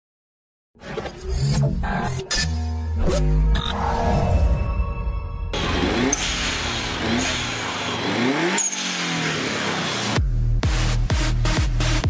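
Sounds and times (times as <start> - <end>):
tyre and road noise: 5.6 - 10.2
car engine accelerating hard: 5.6 - 12.0.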